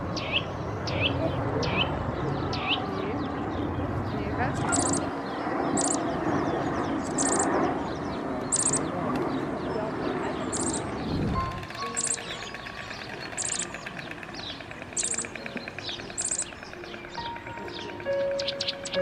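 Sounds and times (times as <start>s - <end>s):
small bird chirping: 4.6s - 7.7s, 8.5s - 8.9s, 10.4s - 19.0s.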